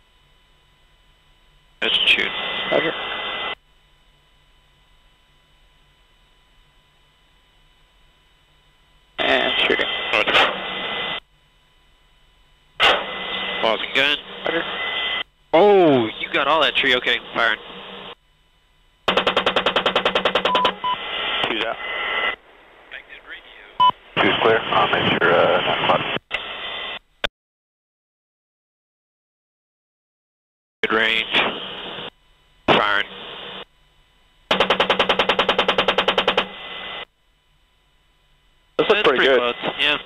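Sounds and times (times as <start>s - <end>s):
chain gun firing burst: 19.1s - 20.6s, 34.5s - 36.5s.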